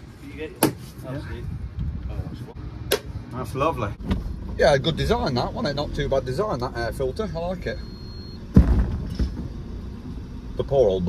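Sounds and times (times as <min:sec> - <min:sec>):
van engine rumbling: 0:00.0 - 0:11.0
heavy thump: 0:08.5 - 0:09.6.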